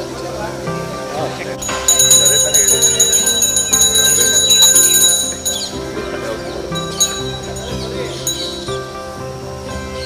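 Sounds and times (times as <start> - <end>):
music: 0.0 - 10.0
voices: 0.0 - 10.0
bell ringing rapidly: 1.6 - 8.9.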